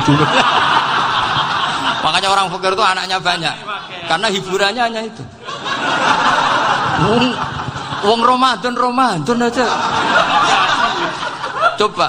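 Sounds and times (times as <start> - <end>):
audience laughing: 0.0 - 2.8, 5.4 - 12.0.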